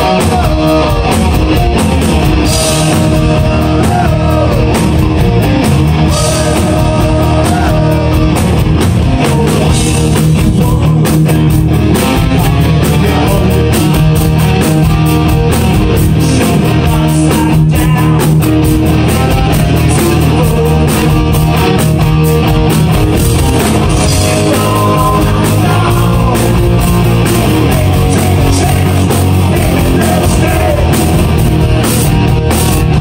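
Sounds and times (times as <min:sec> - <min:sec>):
bass guitar: 0:00.0 - 0:33.0
electric guitar: 0:00.0 - 0:33.0
steady drumbeat: 0:00.0 - 0:33.0.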